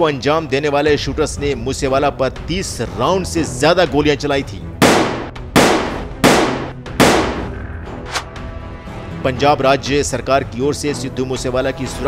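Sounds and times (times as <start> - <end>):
gunshots with echoing tail: 4.8 - 7.6.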